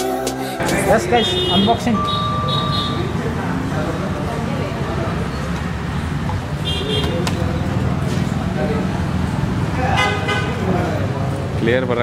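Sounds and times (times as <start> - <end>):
murmur of voices: 0.0 - 12.0
traffic hum: 0.0 - 12.0.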